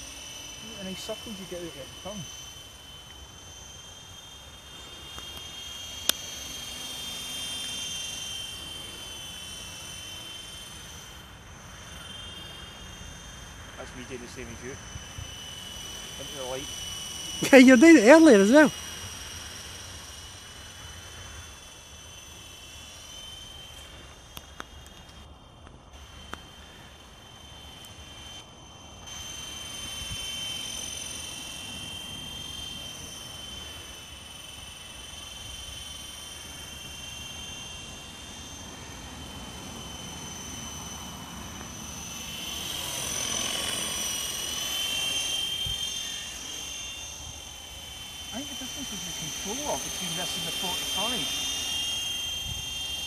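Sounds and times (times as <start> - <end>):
model helicopter motor whine: 0.0 - 53.0.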